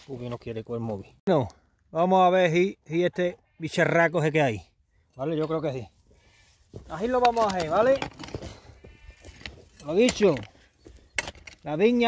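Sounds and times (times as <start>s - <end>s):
hoe scraping stony soil: 5.8s - 12.0s.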